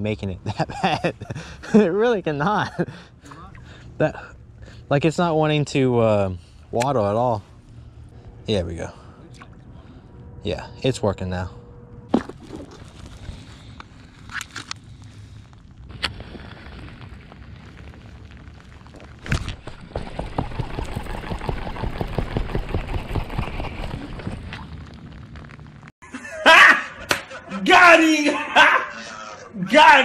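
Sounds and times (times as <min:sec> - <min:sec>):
man laughing: 0:00.4 - 0:03.0, 0:26.0 - 0:27.7
man talking loudly: 0:27.5 - 0:30.0.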